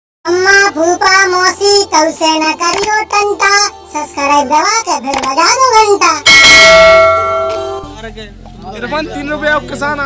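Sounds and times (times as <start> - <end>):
bell chime: 6.3 - 7.9.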